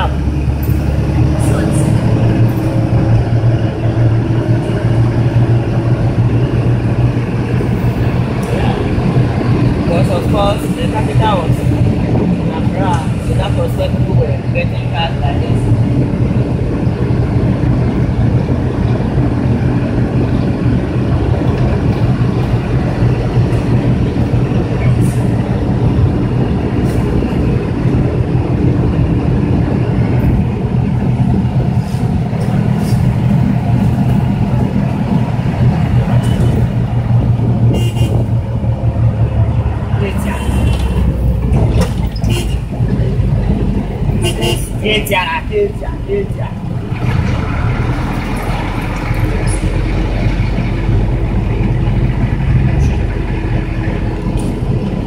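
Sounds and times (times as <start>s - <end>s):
minibus engine drone: 0.0s - 55.0s
road noise: 0.0s - 55.0s.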